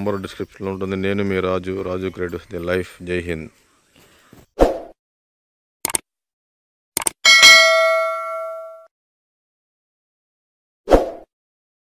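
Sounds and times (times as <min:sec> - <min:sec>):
bright bell ding: 0:07.2 - 0:08.9.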